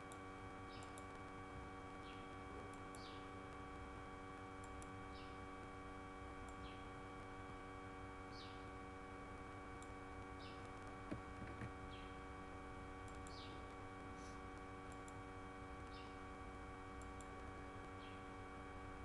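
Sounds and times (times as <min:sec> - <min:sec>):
faint electrical hum: 0:00.0 - 0:19.0
mouse clicks: 0:13.0 - 0:13.6, 0:14.9 - 0:15.2.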